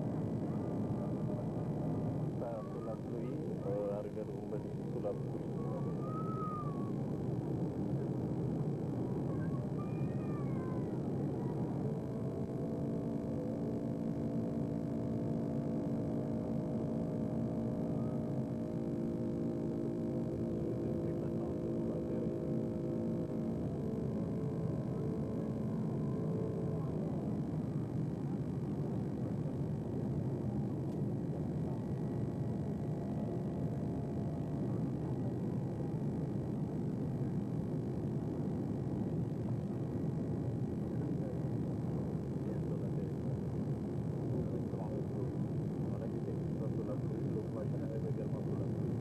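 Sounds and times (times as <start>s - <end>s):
airliner cabin drone: 0.0s - 49.0s.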